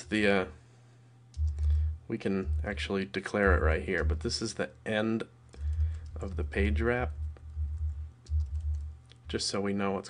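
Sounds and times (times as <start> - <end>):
keyboard typing: 1.3 - 1.8, 5.6 - 9.0
low rumble: 1.4 - 4.4, 5.7 - 9.0.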